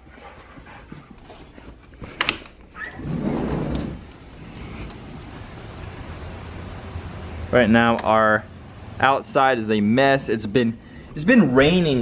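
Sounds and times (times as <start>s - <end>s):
sliding door rolling on track: 3.0s - 6.8s.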